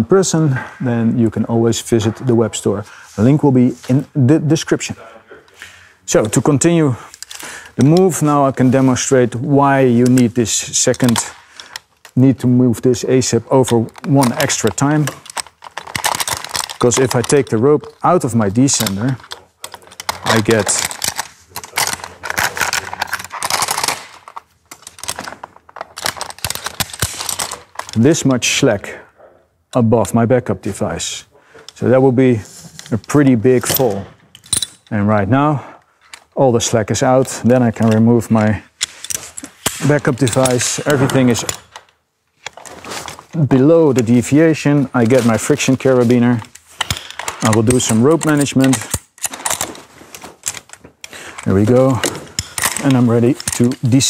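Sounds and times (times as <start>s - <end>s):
metal hardware clicking and rattling: 9.8s - 12.4s, 13.0s - 28.5s, 32.8s - 35.2s, 36.0s - 54.0s.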